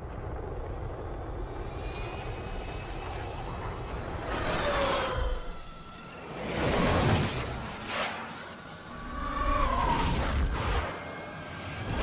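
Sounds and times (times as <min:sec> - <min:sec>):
jet engine rumble: 0:00.0 - 0:07.9
high engine whine: 0:00.0 - 0:12.0.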